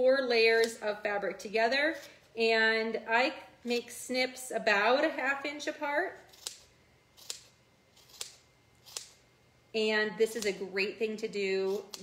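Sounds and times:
scissors snipping fabric: 0:06.3 - 0:06.6, 0:07.2 - 0:09.2, 0:11.6 - 0:12.0.

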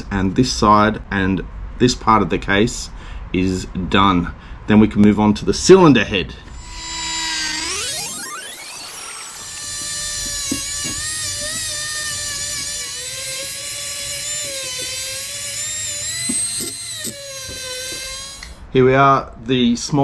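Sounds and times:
die grinder whining: 0:06.5 - 0:18.6.

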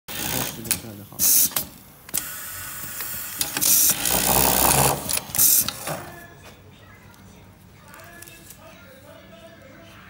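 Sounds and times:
pneumatic air hiss: 0:01.2 - 0:04.1, 0:05.2 - 0:05.8
sewing machine rapid stitching: 0:03.6 - 0:05.6.

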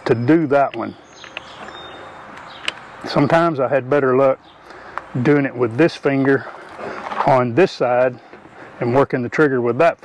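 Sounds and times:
faint high chirp: 0:00.0 - 0:03.0.

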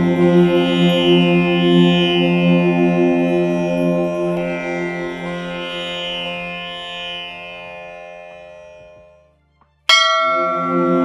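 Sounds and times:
devotional music: 0:00.0 - 0:11.0
steady low tone: 0:00.0 - 0:11.0
bell struck and ringing: 0:09.9 - 0:11.0.

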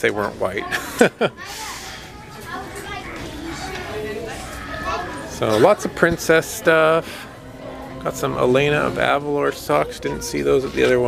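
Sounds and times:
chatter of shoppers: 0:00.0 - 0:11.0
children's voices: 0:00.4 - 0:08.0.

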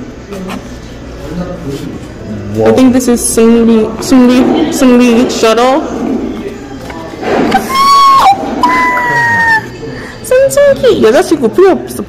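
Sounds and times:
person making high ooh sounds: 0:07.6 - 0:09.8.

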